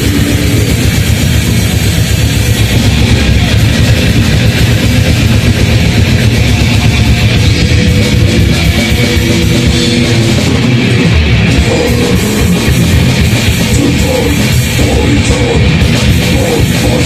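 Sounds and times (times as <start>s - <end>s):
bass guitar: 0.0s - 17.0s
distorted electric guitars: 0.0s - 17.0s
rapid drumming: 0.0s - 17.0s.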